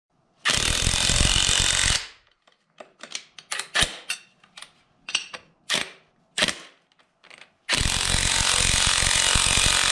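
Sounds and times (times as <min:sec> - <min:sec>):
impact wrench hammering: 0:07.7 - 0:09.9.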